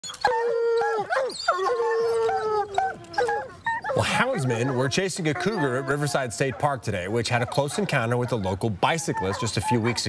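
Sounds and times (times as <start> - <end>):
hounds baying: 0.0 - 10.0
hounds howling: 0.0 - 10.0.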